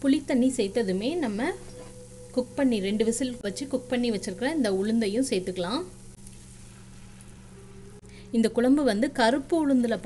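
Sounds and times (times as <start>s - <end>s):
food sizzling in a pan: 0.0s - 8.0s
low steady hum: 0.0s - 10.0s.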